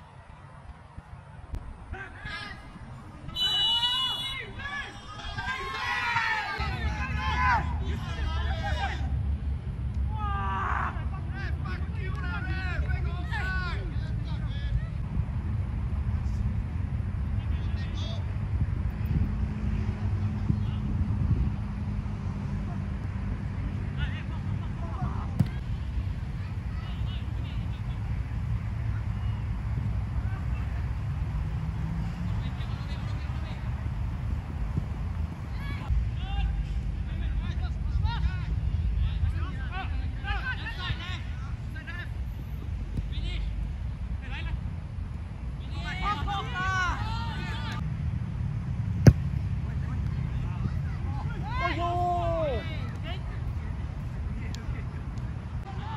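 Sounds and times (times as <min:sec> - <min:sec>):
distant shouts from players: 0:01.9 - 0:09.2, 0:25.0 - 0:28.0
wind rumbling on microphone: 0:13.7 - 0:36.6
sharp thud: 0:25.4 - 0:25.6, 0:49.0 - 0:49.4.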